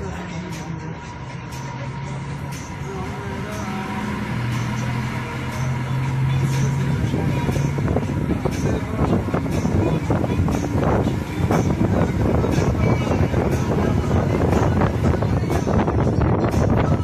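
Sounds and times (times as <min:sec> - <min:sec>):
diesel bus engine running: 0:00.0 - 0:17.0.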